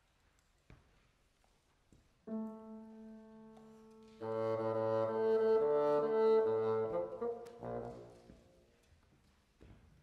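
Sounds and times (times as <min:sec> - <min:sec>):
bassoon low notes: 0:02.3 - 0:08.3.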